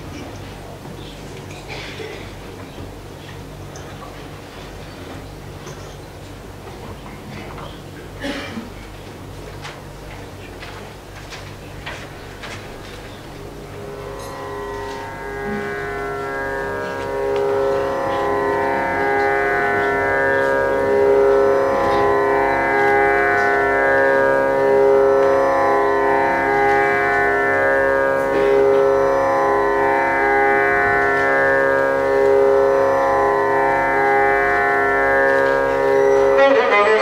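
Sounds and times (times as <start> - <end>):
sustained drone instrument: 0.0 - 37.0.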